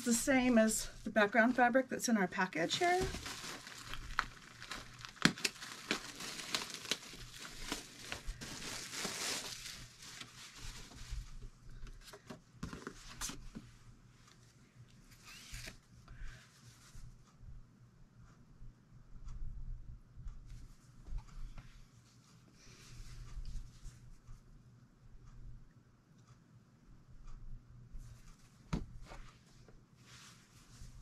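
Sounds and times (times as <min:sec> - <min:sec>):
plastic wrapping crinkling: 0:02.6 - 0:11.5.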